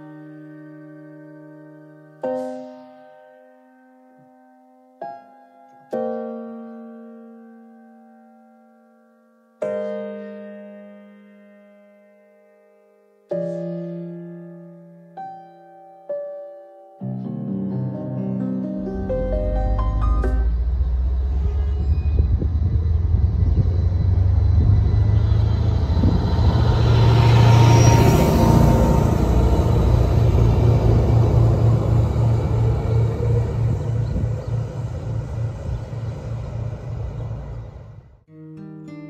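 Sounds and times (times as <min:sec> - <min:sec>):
train engine rumble: 0:18.8 - 0:38.2
train wheels on rails: 0:20.3 - 0:38.0.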